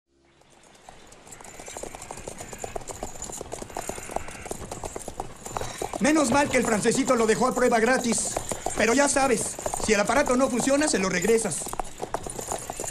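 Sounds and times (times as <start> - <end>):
horse hooves clip-clopping: 0.1 - 12.9.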